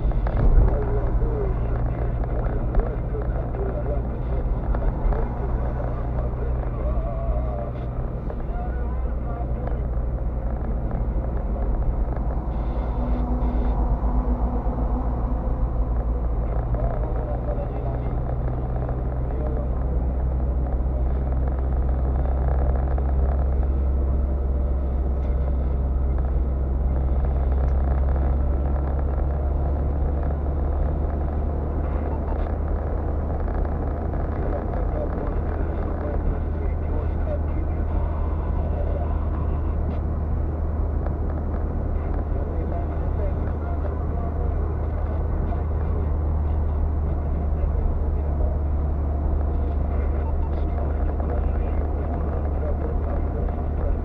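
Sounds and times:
car engine drone: 0.0 - 54.0
tyres on road: 0.0 - 54.0.

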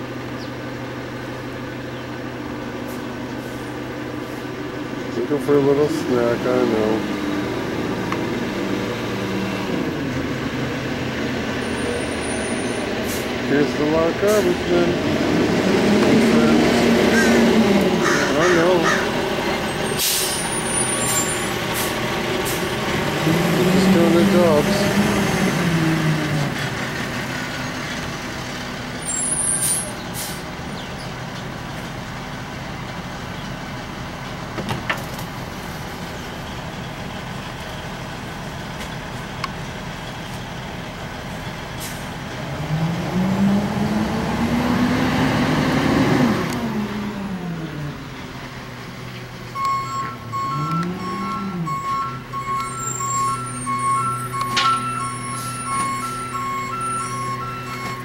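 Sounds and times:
truck engine revving: 0.0 - 58.0
reversing alarm beeping: 49.6 - 58.0.

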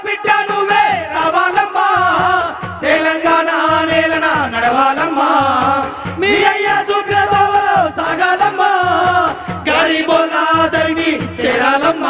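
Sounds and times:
drum beaten with a stick: 0.0 - 12.0
group singing through loudspeakers: 0.0 - 12.0.

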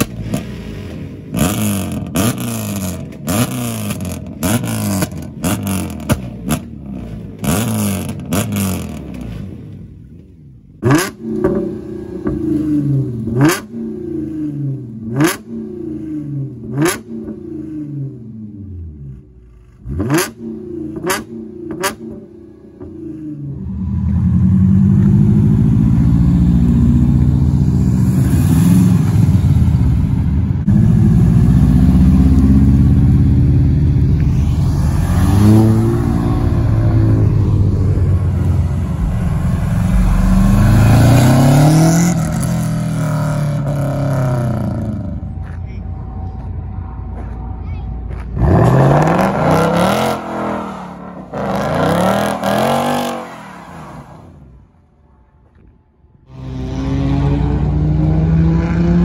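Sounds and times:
car engines revving: 0.0 - 54.9, 55.5 - 59.0.

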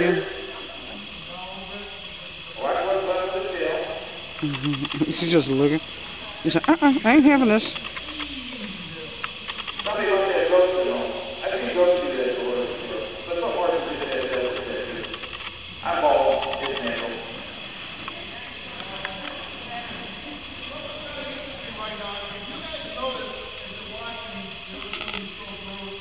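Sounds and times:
indistinct voices talking: 0.0 - 26.0.

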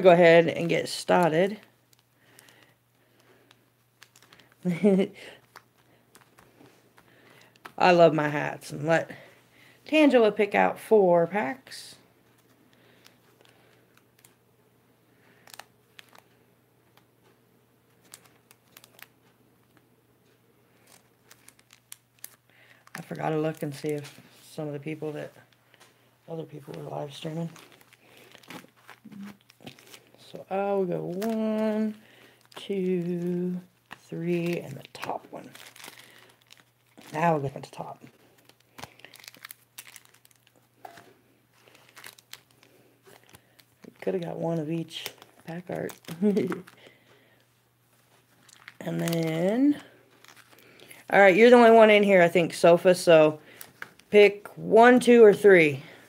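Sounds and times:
wrappers crinkling: 0.0 - 9.3, 11.6 - 14.4, 15.2 - 17.1, 17.9 - 56.0.

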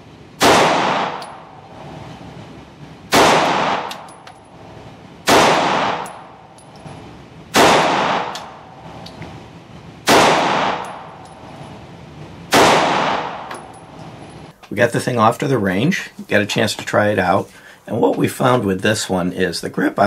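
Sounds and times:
pistol shots echoing indoors: 0.4 - 1.7, 3.1 - 4.6, 5.2 - 9.0, 10.0 - 11.6, 12.5 - 13.9
faint metallic clinks: 4.0 - 4.6, 6.1 - 7.0, 10.8 - 11.8.

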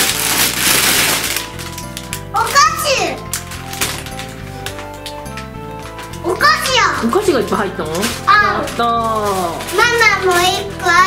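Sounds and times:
background music: 0.0 - 11.0
cellophane bag crinkling: 0.0 - 11.0.

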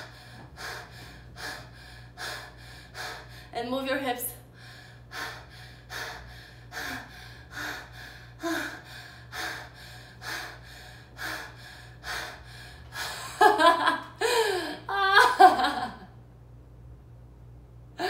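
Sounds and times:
woman breathing fast: 0.0 - 3.5, 4.4 - 13.4, 14.1 - 14.9.

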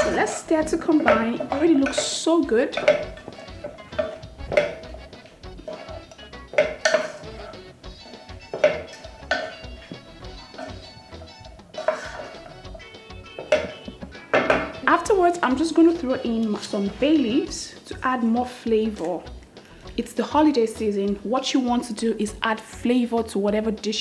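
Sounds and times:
wooden spoon scraping pot: 0.0 - 14.9
background music: 0.0 - 24.0.

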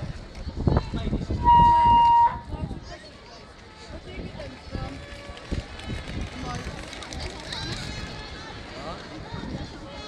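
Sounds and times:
city street noise: 0.0 - 10.0
indistinct voices talking: 0.6 - 10.0.

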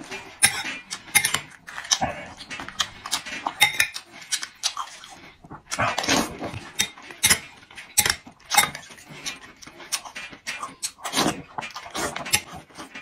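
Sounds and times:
metal spoon scraping ceramic bowl: 0.0 - 5.4, 6.2 - 13.0
wet chewing and lip smacks: 0.8 - 12.9.

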